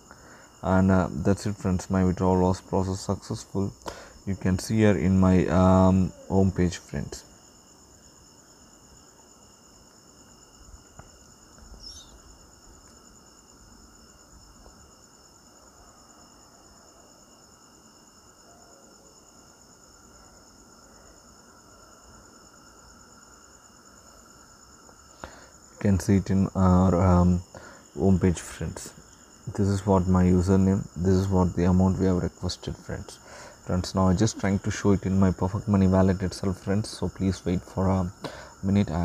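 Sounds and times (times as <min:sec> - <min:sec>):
faint chirp: 0:10.6 - 0:12.5
steady high-pitched tones: 0:28.0 - 0:39.0.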